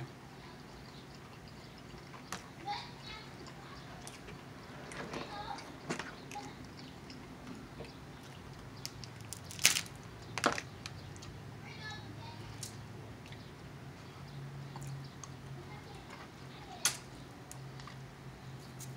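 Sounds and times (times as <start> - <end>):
eating sounds: 0.0 - 18.9
crab legs cracking: 5.6 - 11.4.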